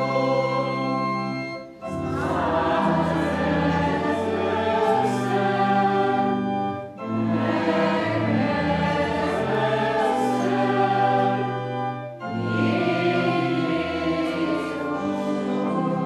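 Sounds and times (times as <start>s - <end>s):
choir singing a hymn: 0.0s - 16.0s
organ accompaniment: 0.0s - 16.0s.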